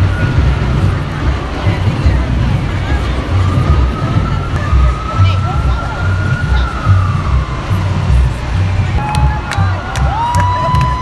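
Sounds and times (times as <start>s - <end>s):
low pulsing rumble: 0.0s - 11.0s
siren wailing: 3.2s - 11.0s.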